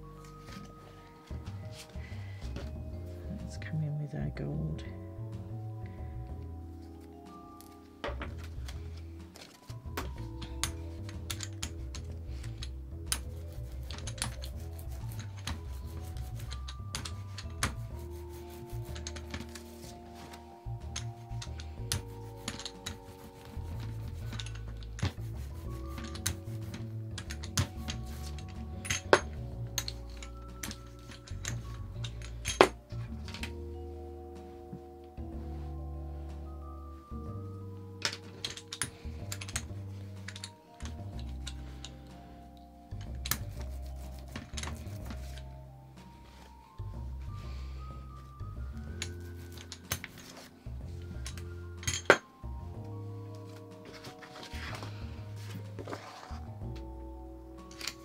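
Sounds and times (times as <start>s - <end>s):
music of held notes over bass: 0.0s - 58.0s.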